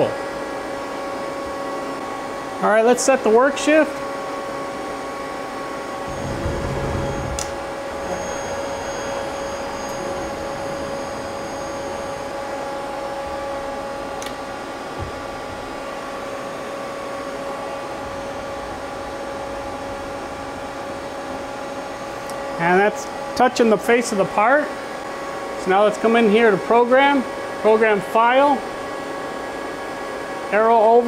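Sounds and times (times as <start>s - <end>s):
lathe humming with whining tones: 3.2s - 28.0s
low rumble: 6.1s - 12.2s.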